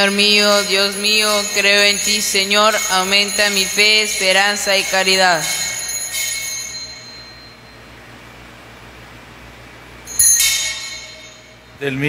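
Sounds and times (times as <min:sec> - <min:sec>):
altar bells jingling: 0:00.0 - 0:08.0, 0:10.1 - 0:11.8
faint steady hum: 0:00.0 - 0:12.0.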